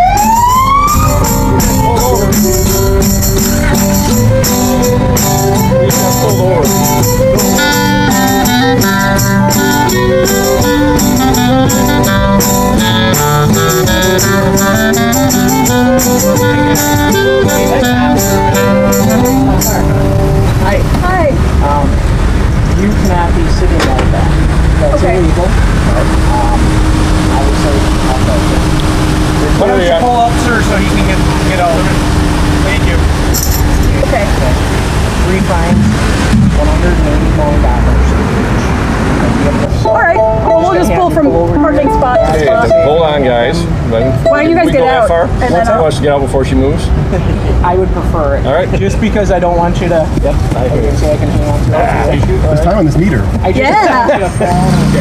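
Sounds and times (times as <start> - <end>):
klezmer band music: 0.0 - 38.0, 38.7 - 49.2
street traffic noise: 0.0 - 55.0
voices: 0.0 - 55.0.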